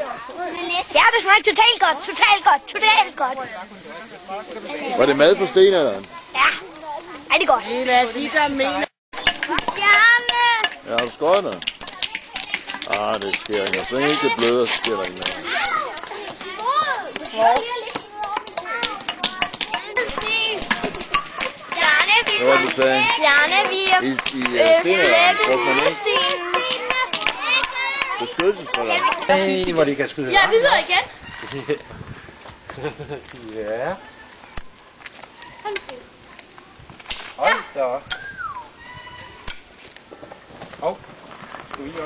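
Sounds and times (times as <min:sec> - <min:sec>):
children chattering: 0:00.0 - 0:42.0.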